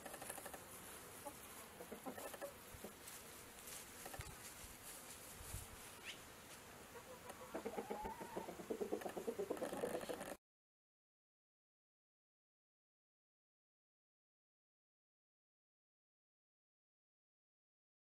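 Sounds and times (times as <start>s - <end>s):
chickens clucking: 0.0s - 3.1s, 6.9s - 10.4s.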